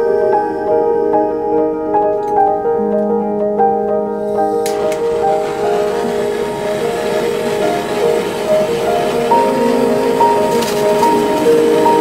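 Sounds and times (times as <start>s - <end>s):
soft piano background music: 0.0s - 12.0s
gas torch flame hissing: 4.3s - 12.0s.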